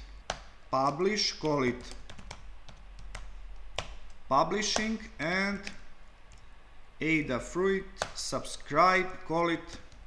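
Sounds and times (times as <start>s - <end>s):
computer keyboard typing: 0.2s - 5.0s.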